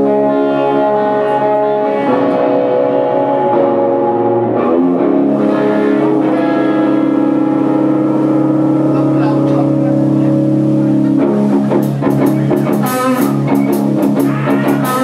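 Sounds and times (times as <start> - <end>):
electric guitar chords: 0.0 - 15.0
drums and cymbals: 11.8 - 15.0.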